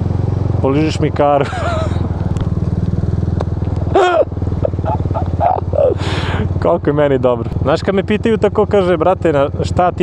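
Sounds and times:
scooter engine running: 0.0 - 10.0.

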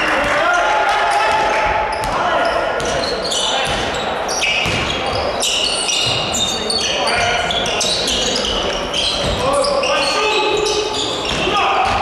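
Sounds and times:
sneaker squeaks on hardwood: 1.7 - 12.0
basketball bouncing: 4.6 - 5.2.

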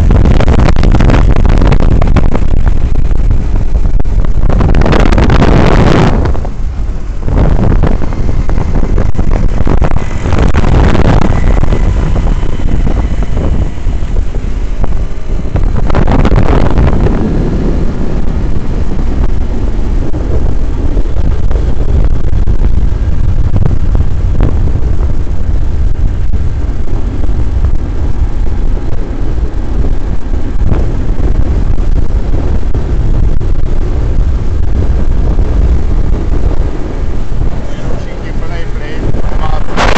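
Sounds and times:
wind buffeting microphone: 0.0 - 39.9
scooter engine running: 6.1 - 21.9.

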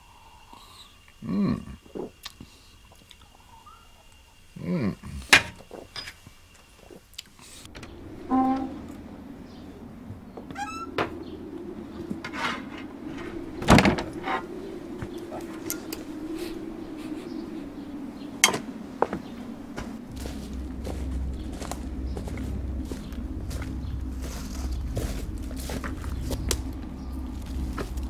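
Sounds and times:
low steady hum: 0.0 - 28.0
creak: 10.4 - 11.1.

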